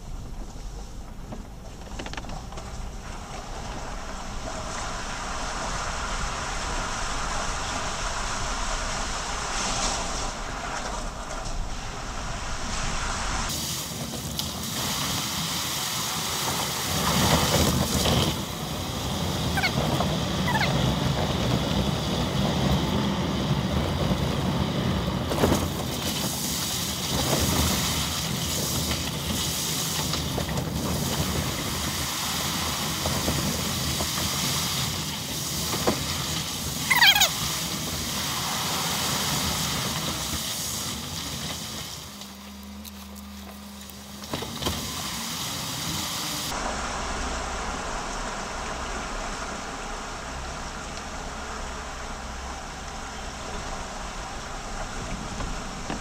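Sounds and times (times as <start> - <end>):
car engine: 0.0 - 56.0
tyres rushing through water: 1.0 - 56.0.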